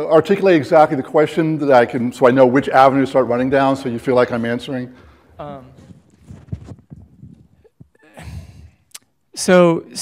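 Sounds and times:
shuffling: 5.0 - 8.0.

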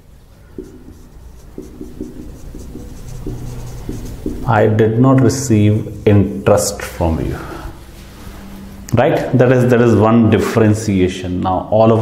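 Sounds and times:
marker squeaking on whiteboard: 0.4 - 6.9.

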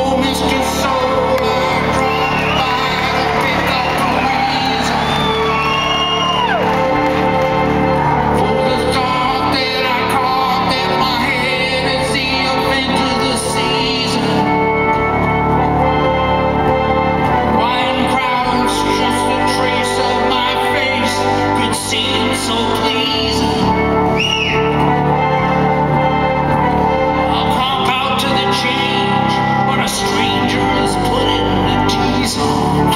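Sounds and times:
organ sustained chords: 0.0 - 32.9
audience whooping: 1.4 - 7.9
crowd whistle falling in pitch: 24.2 - 24.7.

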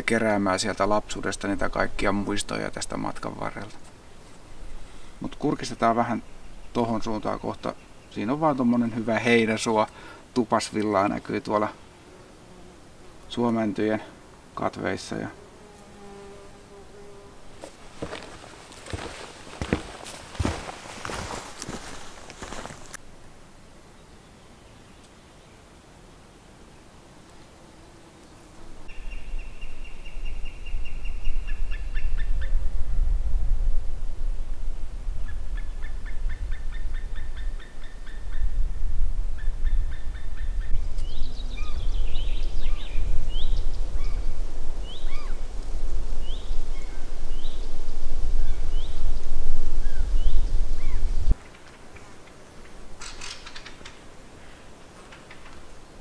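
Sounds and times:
small birds calling: 4.0 - 10.2, 17.6 - 23.0, 39.4 - 45.4, 48.4 - 52.4
wind buffeting microphone: 31.6 - 51.4.

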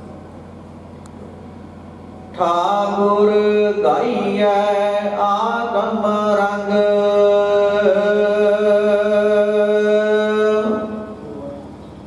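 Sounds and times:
steady low hum: 0.0 - 12.0
devotional chanting: 2.3 - 11.7.

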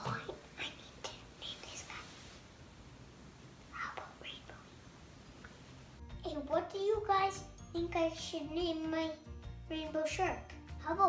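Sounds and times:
child whispering: 0.0 - 2.3, 3.7 - 4.7.

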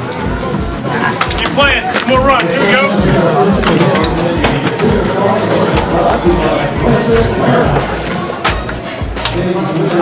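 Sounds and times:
people talking over one another: 0.0 - 10.0
music with low beat: 3.0 - 10.0.

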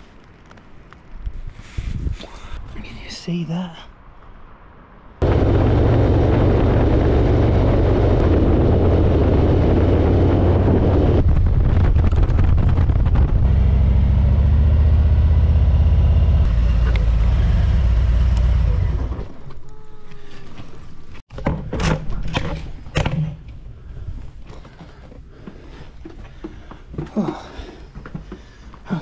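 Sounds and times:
wind rushing: 4.4 - 14.4
motorcycle engine running: 5.2 - 19.1.

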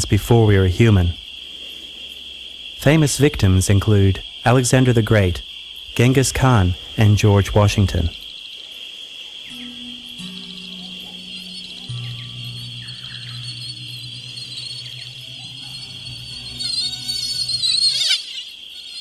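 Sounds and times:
low sustained music notes: 9.4 - 18.0
wavering high swell: 9.5 - 18.3
high-pitched chirring: 9.5 - 19.0.

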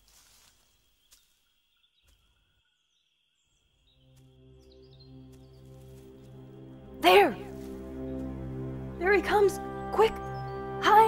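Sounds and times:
soft low music tones: 0.0 - 11.0.

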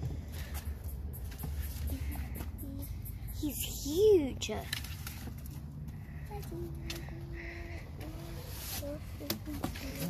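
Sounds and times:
steady low rumble: 0.0 - 10.0.

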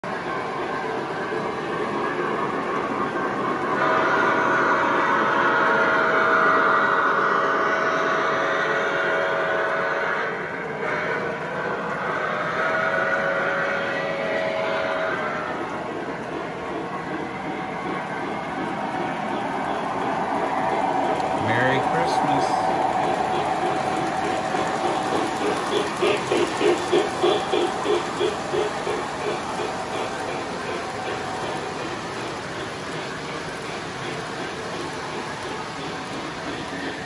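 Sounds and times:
model train wheels rumbling: 8.8 - 37.0.

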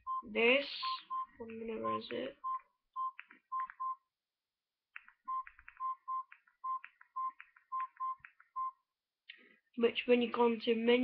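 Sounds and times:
phone keypad beeps: 0.0 - 4.1, 5.2 - 8.8.

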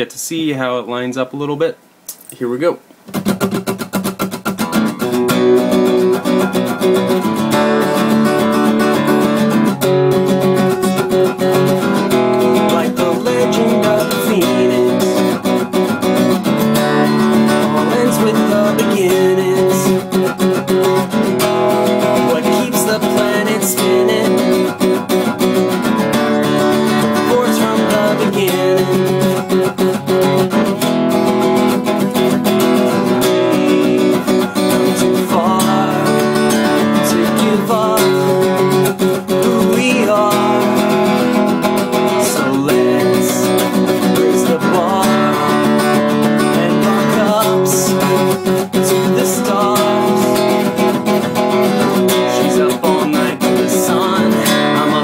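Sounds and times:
acoustic guitar strumming: 3.0 - 55.0.

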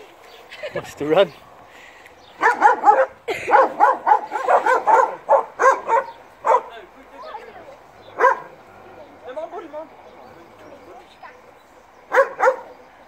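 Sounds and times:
people laughing: 0.4 - 1.2, 3.0 - 5.0.

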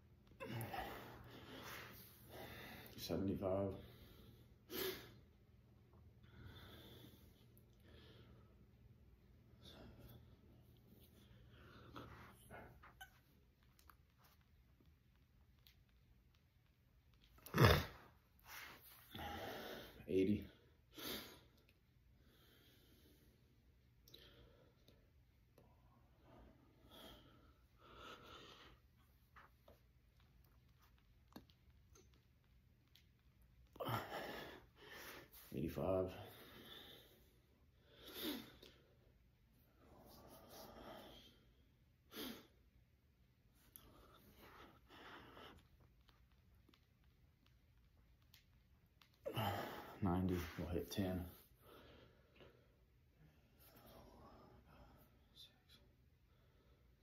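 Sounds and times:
soft breaths: 0.2 - 17.3, 18.1 - 57.0.

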